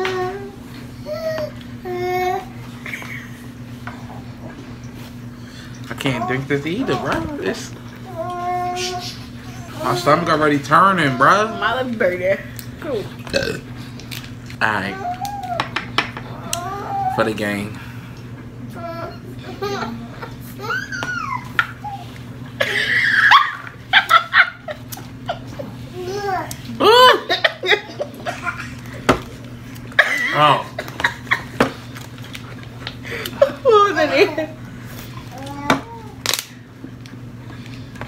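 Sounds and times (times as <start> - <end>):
person laughing: 22.6 - 25.5, 26.7 - 28.7.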